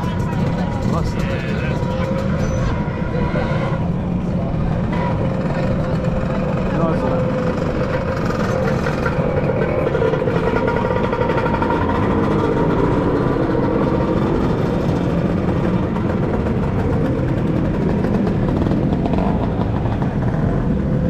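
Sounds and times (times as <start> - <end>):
scooter engine running: 0.0 - 3.1, 3.8 - 21.0.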